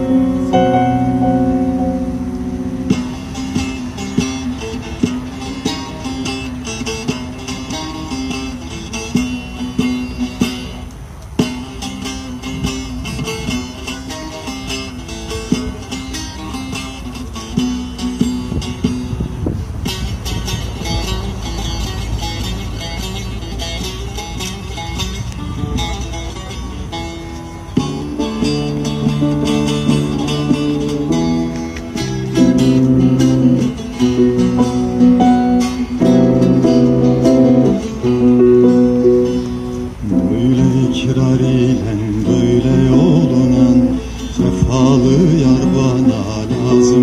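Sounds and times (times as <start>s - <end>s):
person singing long wavering notes: 0.0s - 2.9s, 40.0s - 47.0s
plucked string instrument: 0.0s - 47.0s.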